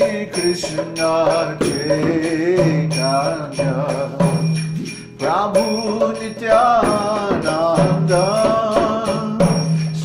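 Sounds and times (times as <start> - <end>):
man chanting a devotional melody: 0.0 - 10.0.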